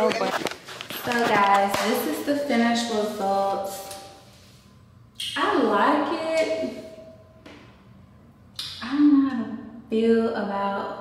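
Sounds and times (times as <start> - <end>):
woman speaking: 1.0 - 4.1, 5.2 - 7.1, 8.8 - 11.0.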